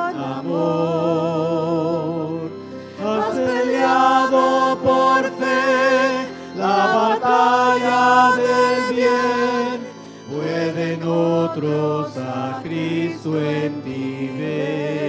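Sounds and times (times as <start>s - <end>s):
keyboard accompaniment: 0.0s - 15.0s
woman singing a hymn: 0.0s - 15.0s.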